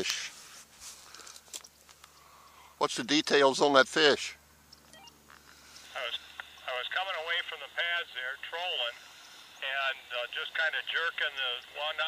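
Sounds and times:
man talking over walkie-talkie: 0:05.9 - 0:09.0, 0:09.6 - 0:12.0.

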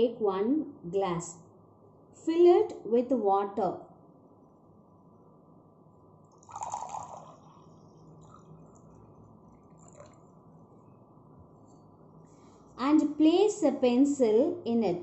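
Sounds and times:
water pouring into a glass: 0:06.3 - 0:10.8.

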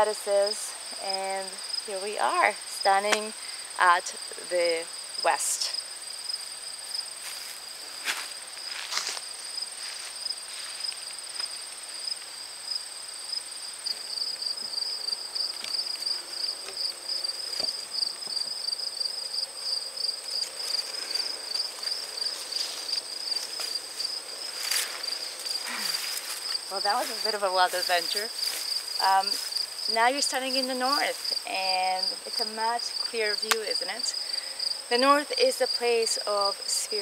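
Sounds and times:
insects trilling: 0:00.0 - 0:37.0
leaves brushing: 0:06.3 - 0:12.6, 0:13.7 - 0:32.6
footsteps: 0:06.4 - 0:12.3, 0:15.4 - 0:18.5, 0:20.1 - 0:31.4.

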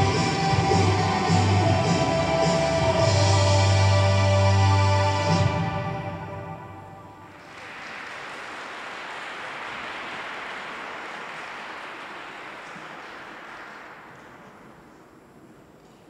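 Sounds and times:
audience applauding: 0:07.3 - 0:15.3.

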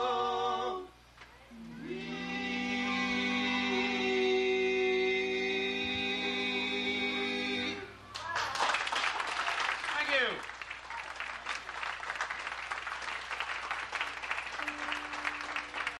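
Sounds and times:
audience applauding: 0:08.1 - 0:16.0.

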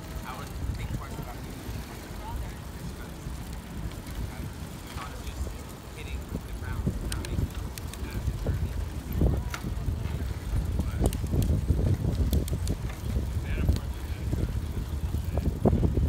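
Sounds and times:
wind rumbling on microphone: 0:00.0 - 0:16.0
light clicks and ticks: 0:03.0 - 0:14.0.

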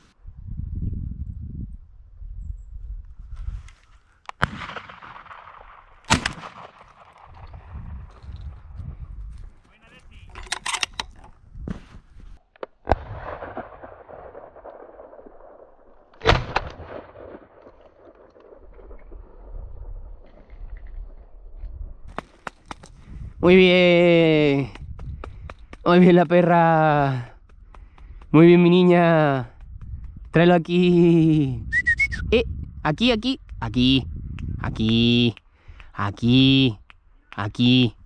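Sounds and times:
shotgun shots with echo: 0:04.4 - 0:07.6, 0:16.2 - 0:18.3.

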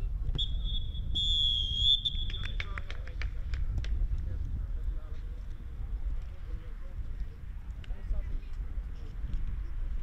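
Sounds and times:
referee's whistle blast: 0:00.4 - 0:02.6.

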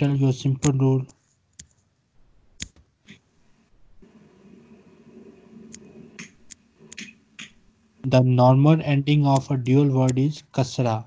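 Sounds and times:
computer mouse clicking: 0:01.6 - 0:01.8, 0:05.7 - 0:07.6.

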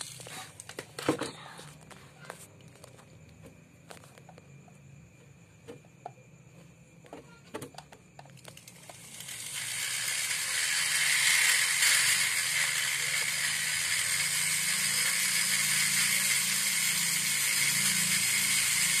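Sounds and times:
die grinder hissing on metal: 0:08.6 - 0:19.0.

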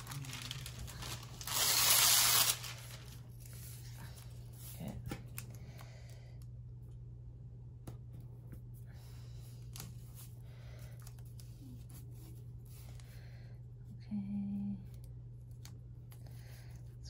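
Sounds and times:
paper rustling: 0:00.0 - 0:05.5
low background hum: 0:00.0 - 0:17.0.

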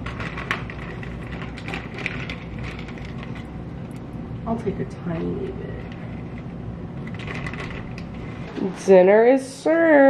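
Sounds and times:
plastic bag crinkling: 0:00.0 - 0:04.2, 0:05.2 - 0:08.6
low room hum: 0:00.0 - 0:10.0.

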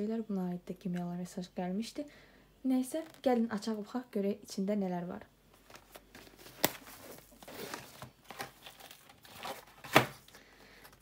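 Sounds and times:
plastic pouch rustling: 0:05.5 - 0:11.0.

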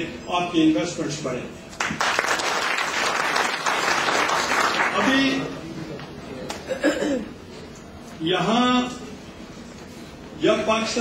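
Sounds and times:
audience applauding: 0:01.8 - 0:05.4.

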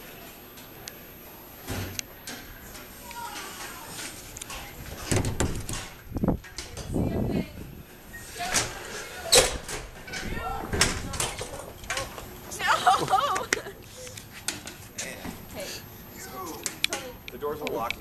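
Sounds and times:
indistinct voices: 0:02.3 - 0:05.4, 0:06.2 - 0:14.2.

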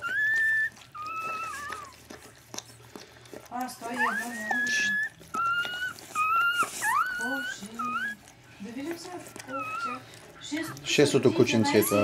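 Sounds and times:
puppy whining: 0:00.0 - 0:12.0.

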